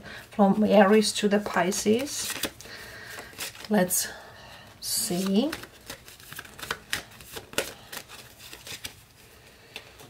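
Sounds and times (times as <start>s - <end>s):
cards being shuffled: 0.9s - 3.8s, 4.9s - 10.0s.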